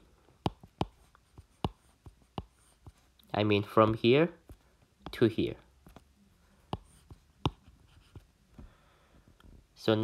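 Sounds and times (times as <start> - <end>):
stylus tapping on tablet screen: 0.3 - 3.1, 3.8 - 8.7.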